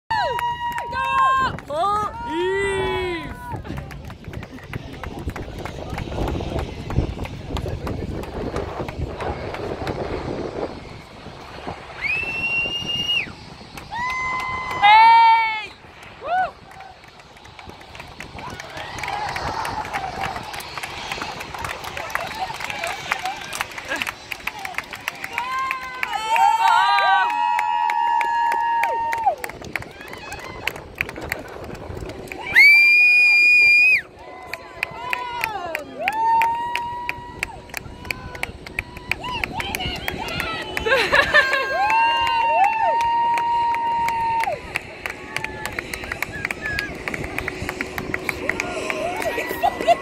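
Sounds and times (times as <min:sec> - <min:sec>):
crowd shouting and cheering: 0:00.1 - 0:50.0
murmur of voices: 0:44.4 - 0:50.0.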